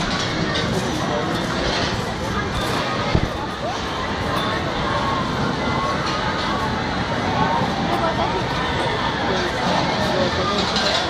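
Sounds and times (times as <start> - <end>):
crowd babble: 0.0 - 11.0.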